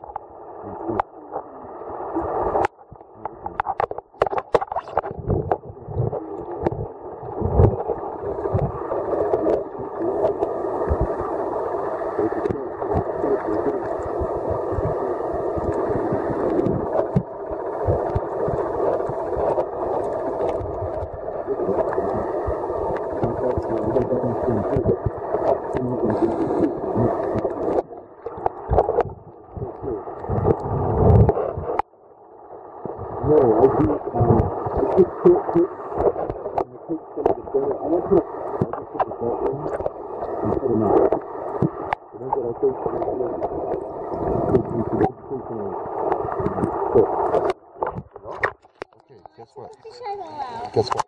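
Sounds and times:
underwater rushing water: 0:00.0 - 0:51.0
underwater knocks and thumps: 0:02.2 - 0:11.4, 0:12.4 - 0:31.9, 0:32.8 - 0:42.1, 0:42.8 - 0:45.2, 0:45.9 - 0:50.0.

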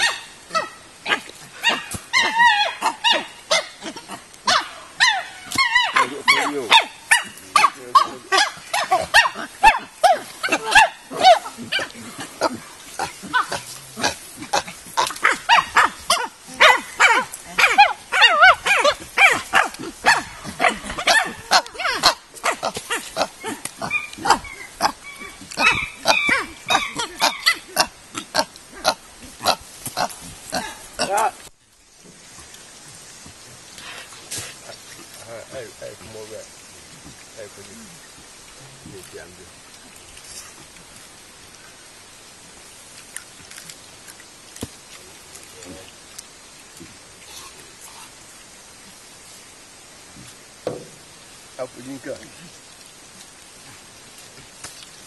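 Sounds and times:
chimpanzees grunting and calling: 0:00.0 - 0:31.4.

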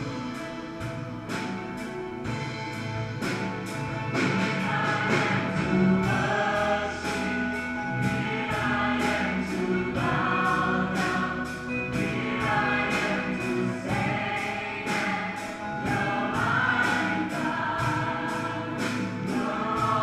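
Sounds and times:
small band playing: 0:00.0 - 0:20.0
group of voices singing: 0:03.9 - 0:20.0.

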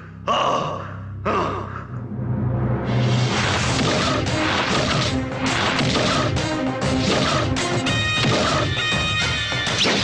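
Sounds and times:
dramatic music: 0:00.4 - 0:10.0
crashing whacking impacts: 0:03.4 - 0:07.6.

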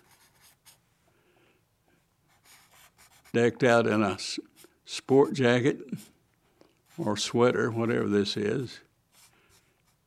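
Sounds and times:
marker drawing on paper: 0:00.0 - 0:00.8, 0:02.3 - 0:03.4, 0:06.8 - 0:08.1, 0:09.1 - 0:10.0.

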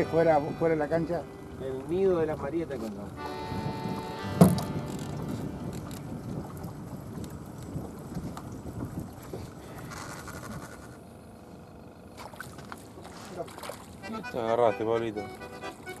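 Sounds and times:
wind on microphone: 0:00.0 - 0:10.9
water lapping against boat hull: 0:00.0 - 0:11.4, 0:12.0 - 0:16.0
sharp knock: 0:04.4 - 0:04.7.

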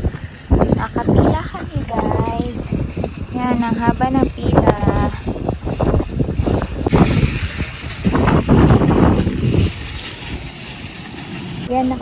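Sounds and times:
strong wind buffeting microphone: 0:00.0 - 0:12.0.

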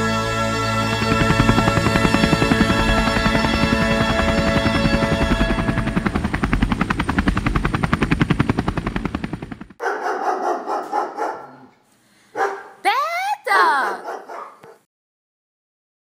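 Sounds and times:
dog barking: 0:09.8 - 0:11.7, 0:12.3 - 0:12.8, 0:13.6 - 0:14.9
dog snarling: 0:13.9 - 0:14.8.

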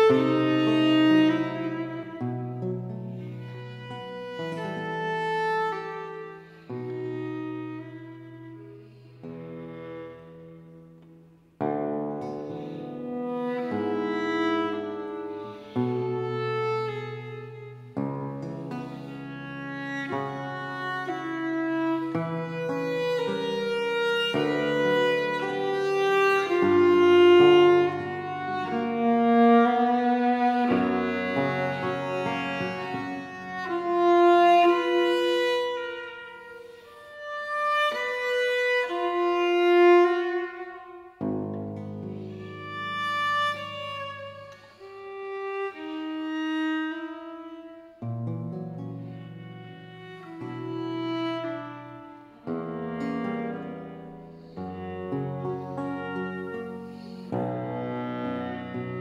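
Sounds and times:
bowed viola melody: 0:00.0 - 0:59.0.

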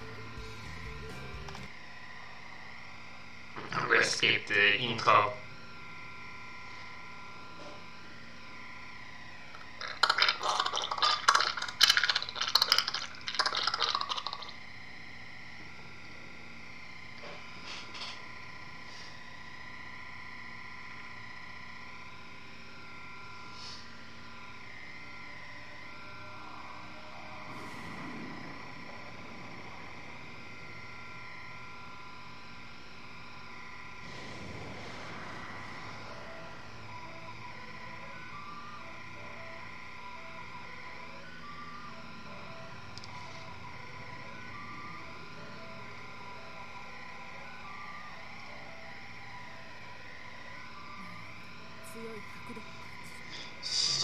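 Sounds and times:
steady held tones: 0:26.0 - 0:40.0
whooshes: 0:27.5 - 0:30.3, 0:34.0 - 0:36.9.

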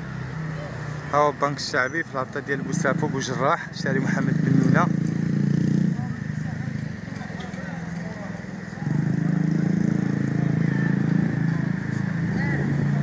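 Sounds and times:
vehicle engine running: 0:00.0 - 0:13.0
faint voices: 0:00.3 - 0:13.0.

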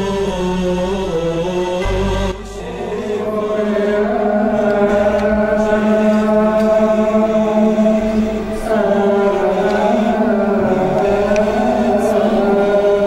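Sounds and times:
slow sung chant: 0:00.0 - 0:13.0
steady low drone: 0:00.0 - 0:13.0.

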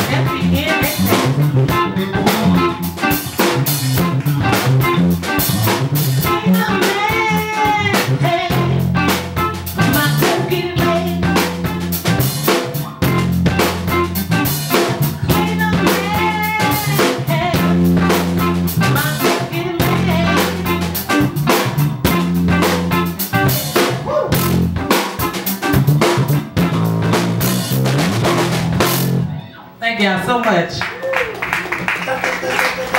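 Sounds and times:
blues band playing: 0:00.0 - 0:32.9.

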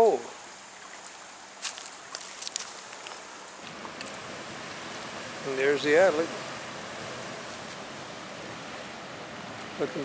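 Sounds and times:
river water flowing over stones: 0:00.0 - 0:10.0
light clicks and crackles: 0:01.6 - 0:04.2.

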